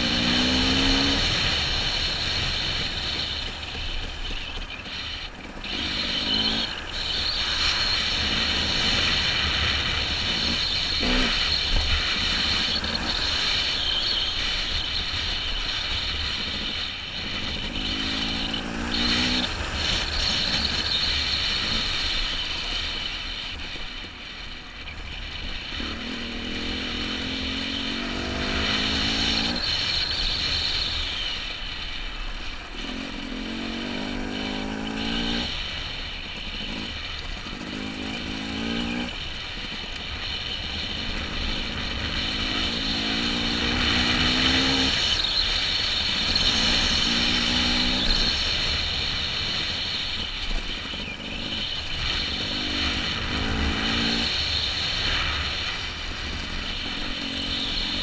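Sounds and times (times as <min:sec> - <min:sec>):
dirt bike engine revving: 0:00.0 - 0:22.9, 0:25.3 - 0:30.6, 0:32.7 - 0:58.0.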